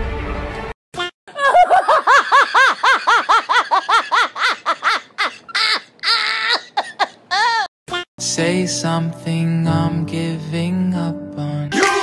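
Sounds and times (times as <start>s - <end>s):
high-pitched laughter: 1.0s - 7.7s.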